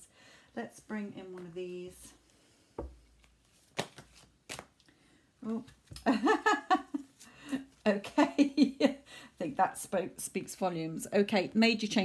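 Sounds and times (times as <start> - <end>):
woman speaking: 0.6 - 2.2, 7.9 - 8.8, 9.4 - 12.0
hands shuffling cards: 3.1 - 5.0
crisp card snaps: 3.2 - 4.9.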